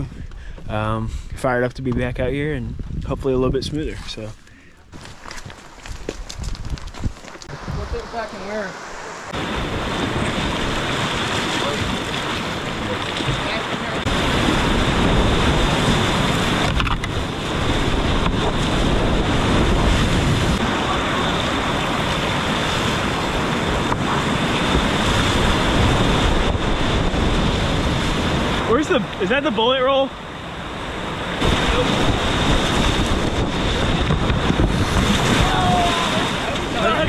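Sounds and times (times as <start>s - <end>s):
whitewater rapids rushing: 7.5s - 16.7s, 17.4s - 30.0s, 30.6s - 37.0s.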